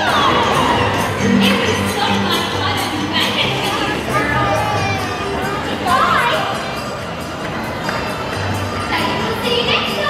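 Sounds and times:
music playing: 0:00.0 - 0:10.0
children shouting and cheering: 0:03.5 - 0:06.6.

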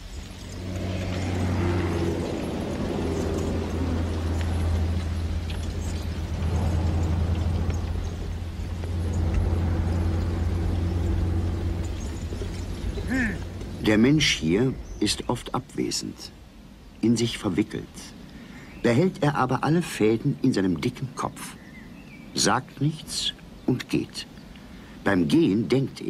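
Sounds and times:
harrow rattling over dirt: 0:00.0 - 0:15.0
low mechanical hum: 0:00.0 - 0:15.1.

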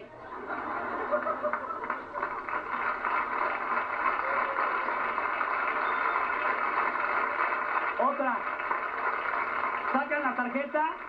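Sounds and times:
audience laughing: 0:00.2 - 0:05.0
audience applauding: 0:00.4 - 0:11.0.

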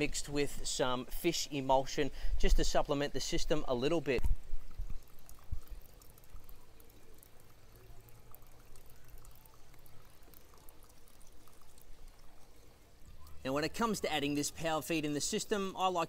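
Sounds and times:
liquid pouring from plastic bottle: 0:04.2 - 0:14.5.

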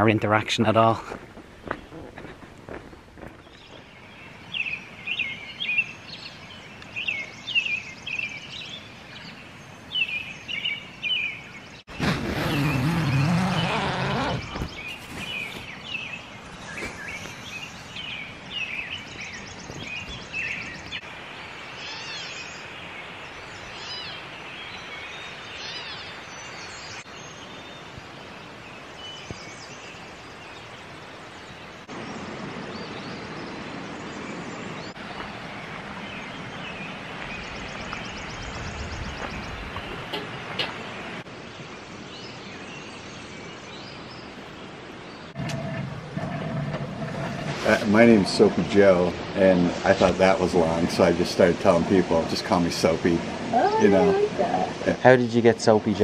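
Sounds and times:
songbirds chirping: 0:00.0 - 0:56.0.

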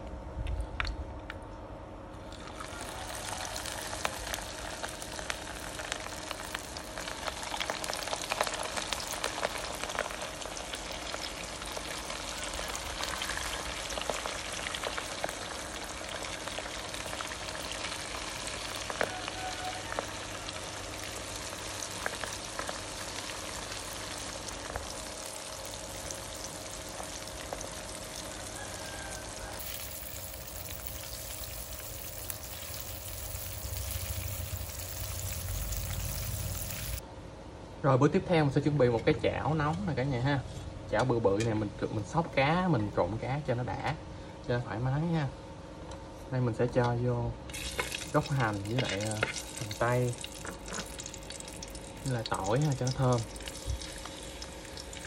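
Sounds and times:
food deep-frying in hot oil: 0:02.2 - 0:37.0, 0:46.7 - 0:55.0.

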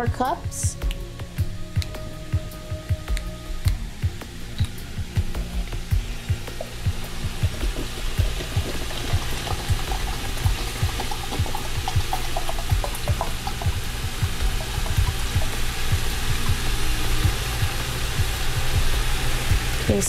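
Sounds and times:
water pouring into plastic cup: 0:07.5 - 0:13.9.

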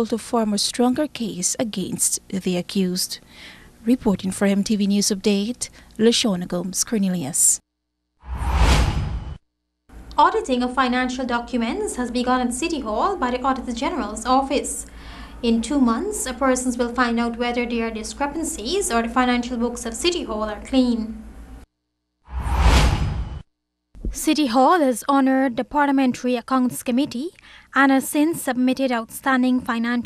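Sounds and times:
whoosh with deep rumble: 0:08.2 - 0:09.4, 0:22.3 - 0:23.4.

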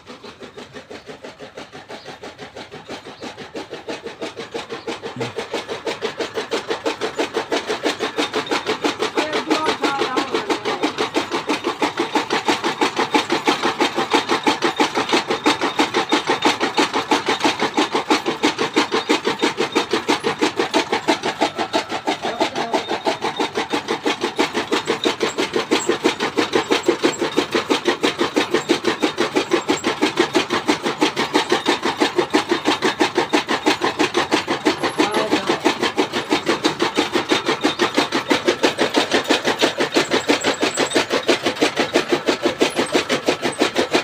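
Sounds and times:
chaff cutter chopping fodder: 0:00.0 - 0:44.0.

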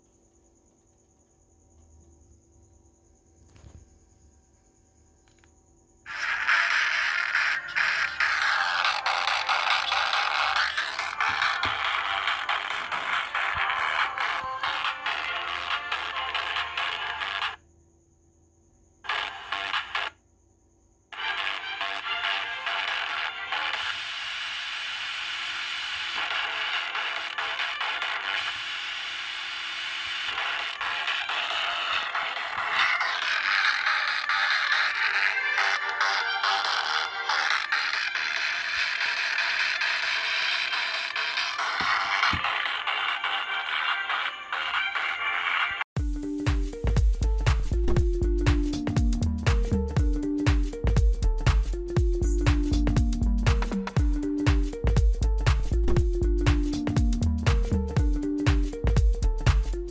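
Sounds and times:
pop music from phone radio speaker: 0:06.1 - 0:17.6, 0:19.1 - 0:20.2, 0:21.2 - 0:59.9.

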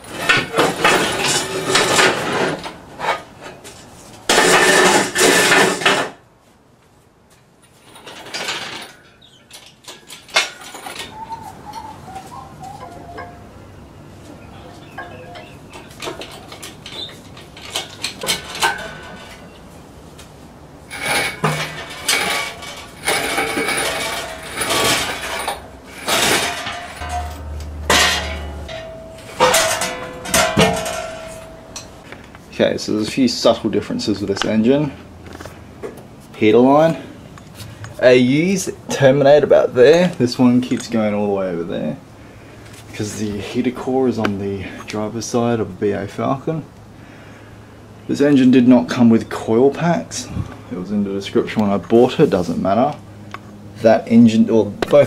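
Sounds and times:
engine crane rattling on concrete: 0:20.9 - 0:32.1
sharp metal clank: 0:21.0 - 0:32.0.

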